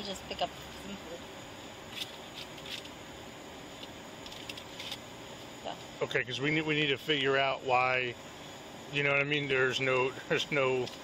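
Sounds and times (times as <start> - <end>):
outdoor street background hiss: 0.0 - 11.0.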